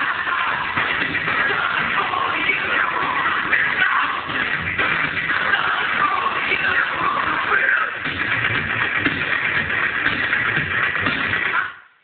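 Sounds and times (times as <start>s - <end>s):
electronic dance music through subwoofer: 0.0s - 12.0s.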